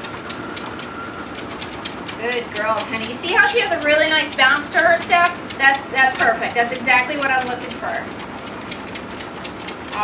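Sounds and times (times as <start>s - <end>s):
dog paws on treadmill belt: 0.0s - 10.0s
treadmill motor whine: 0.0s - 10.0s.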